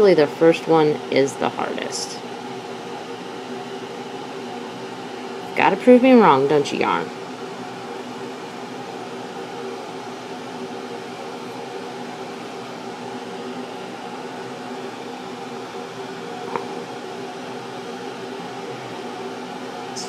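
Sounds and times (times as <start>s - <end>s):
air conditioner fan whirring: 0.0s - 20.0s.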